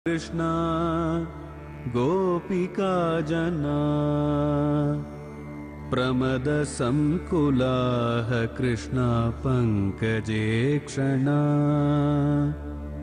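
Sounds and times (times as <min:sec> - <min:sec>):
person chanting: 0:00.1 - 0:05.2, 0:05.8 - 0:13.0.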